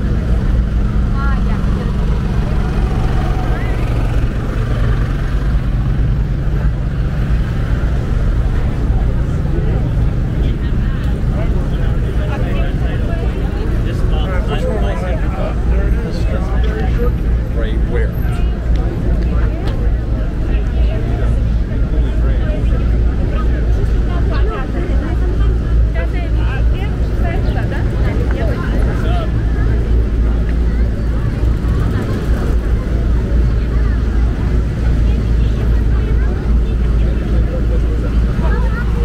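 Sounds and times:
low rumble of traffic: 0.0s - 39.0s
passersby talking: 0.0s - 39.0s.

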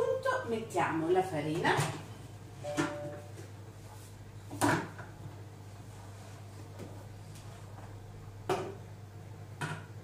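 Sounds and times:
short ringing tone: 2.6s - 3.3s.

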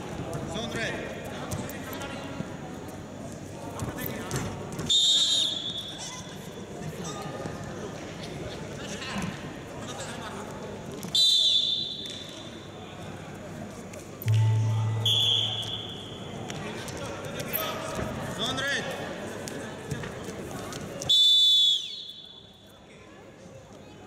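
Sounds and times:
referee's whistle blasts: 4.9s - 6.0s, 11.2s - 12.2s, 14.3s - 16.3s, 21.1s - 22.6s
low buzz: 14.2s - 16.4s.

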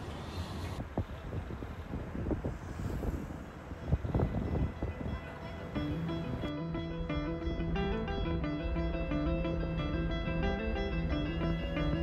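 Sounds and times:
wind buffeting microphone: 0.0s - 6.5s
cars passing with low rumble: 0.0s - 12.0s.

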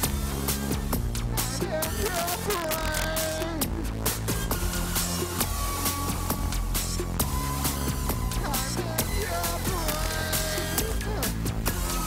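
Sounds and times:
electronic synthesizer music: 0.0s - 12.0s
sustained synth bass: 0.0s - 12.0s.

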